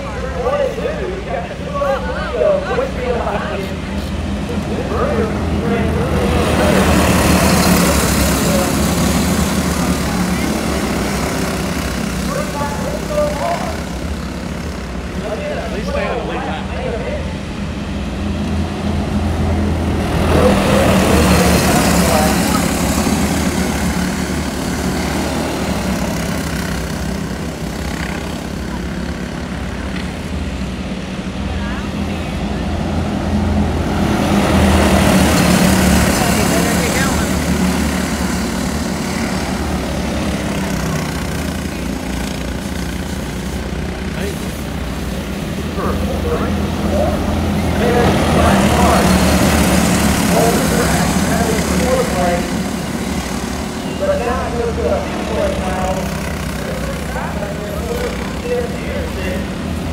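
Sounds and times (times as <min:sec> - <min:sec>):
race car engines passing: 0:00.0 - 0:59.9.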